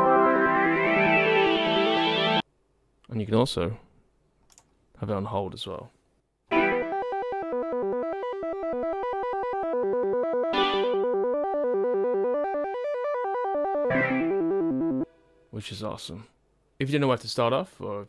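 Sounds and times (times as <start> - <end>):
arpeggiated synth notes: 6.5 - 15.1.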